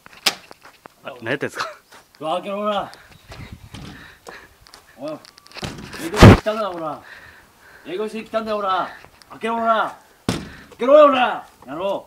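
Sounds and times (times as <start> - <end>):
knocks on glass sliding door: 10.3 - 10.6.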